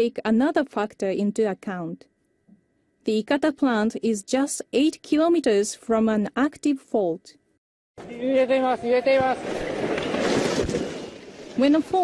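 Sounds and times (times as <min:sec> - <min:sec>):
building crumbling and collapsing: 0:08.9 - 0:12.0.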